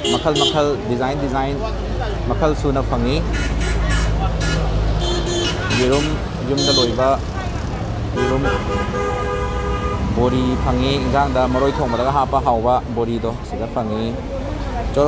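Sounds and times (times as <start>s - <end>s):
vehicle horn honking: 0.0s - 0.6s, 3.3s - 7.0s, 8.2s - 10.1s
people talking: 0.0s - 4.8s, 5.6s - 8.6s, 10.2s - 15.0s.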